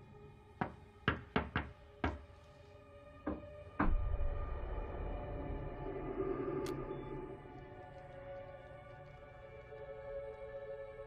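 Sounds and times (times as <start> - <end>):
knuckles knocking on wall: 0.6 - 2.2
deep low rumble: 3.9 - 7.9.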